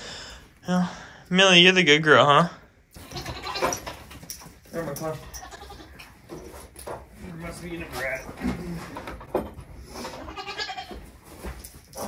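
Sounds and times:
goats bleating: 3.0s - 3.8s, 5.4s - 6.0s, 10.1s - 11.0s.

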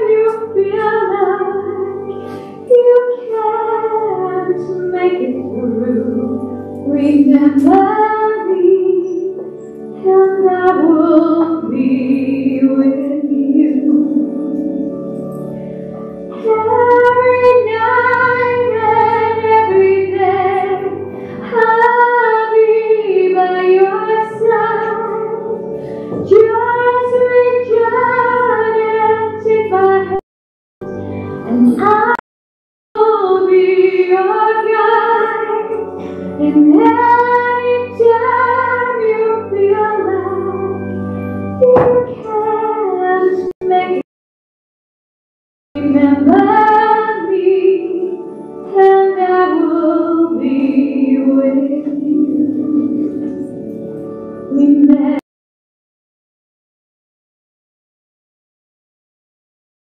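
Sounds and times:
woman singing a slow hymn: 2.7s - 9.4s, 36.4s - 40.6s, 45.8s - 53.4s, 54.5s - 55.2s.

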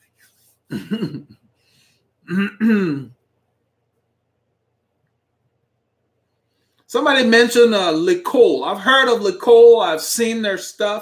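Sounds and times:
man clearing his throat: 0.7s - 1.4s, 2.2s - 3.2s.

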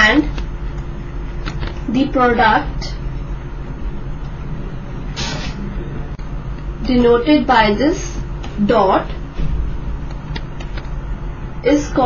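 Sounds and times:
low electrical hum and hiss: 0.0s - 12.0s.

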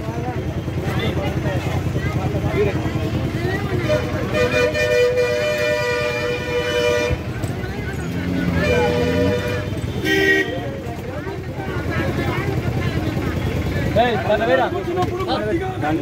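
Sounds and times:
crowd chatter: 0.0s - 16.0s
vehicle horns honking: 3.8s - 7.5s, 8.4s - 10.9s.

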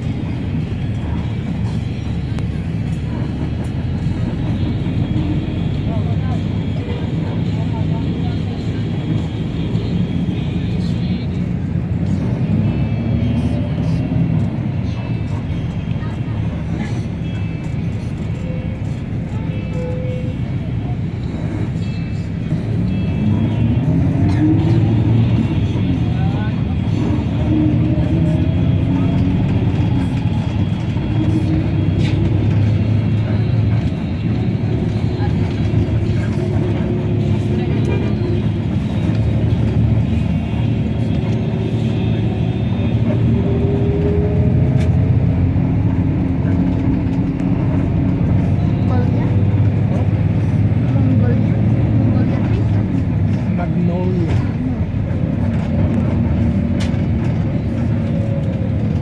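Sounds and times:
bus engine running: 0.0s - 59.0s
road noise: 0.0s - 59.0s.

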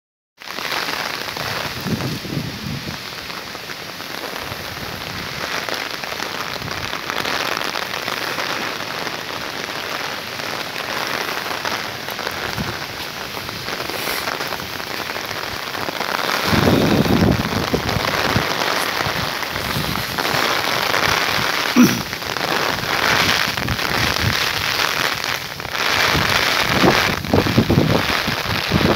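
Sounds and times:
heavy rain pouring: 0.4s - 28.9s.

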